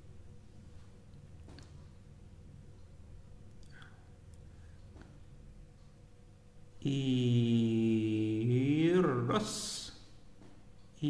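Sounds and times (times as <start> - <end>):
man humming low note: 6.8 - 9.2.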